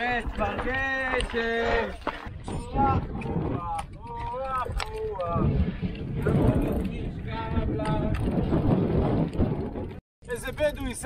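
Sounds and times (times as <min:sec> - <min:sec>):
mountain bike rattling over stones: 0:00.0 - 0:02.3
wind buffeting microphone: 0:00.0 - 0:11.0.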